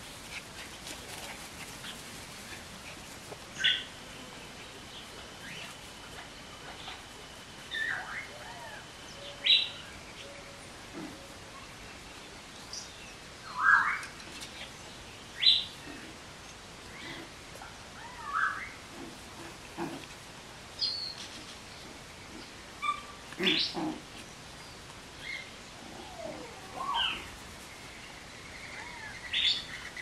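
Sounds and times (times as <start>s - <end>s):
puppies yipping and squeaking: 22.8s - 23.7s.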